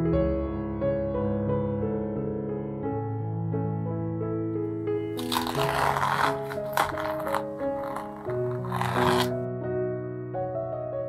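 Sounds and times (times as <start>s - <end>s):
soft piano music: 0.0s - 11.0s
tape peeling off canvas: 5.2s - 9.3s.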